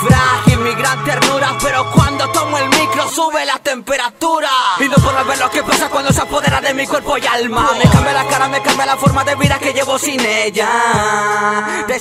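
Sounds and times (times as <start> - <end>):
rapping over a beat: 0.0 - 12.0
kick drum hits: 7.8 - 8.1.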